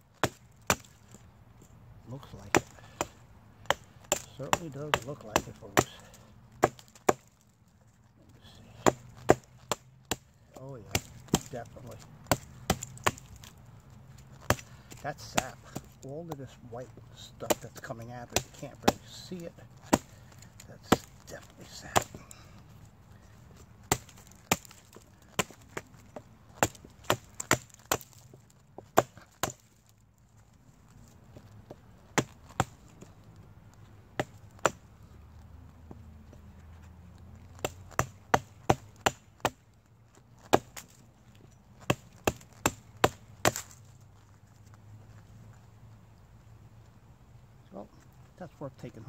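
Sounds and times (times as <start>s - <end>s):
hatchet chopping into log: 0.2s - 1.0s, 2.4s - 7.3s, 8.8s - 10.3s, 10.9s - 13.5s, 14.4s - 16.0s, 17.4s - 22.4s, 23.8s - 29.7s, 32.2s - 33.0s, 34.2s - 34.8s, 37.6s - 39.6s, 40.4s - 41.0s, 41.8s - 43.8s.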